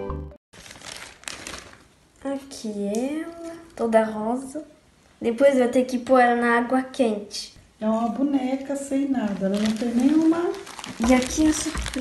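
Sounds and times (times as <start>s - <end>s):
rustling and crinkling: 0.6s - 1.9s, 9.1s - 12.0s
person speaking: 7.4s - 12.0s.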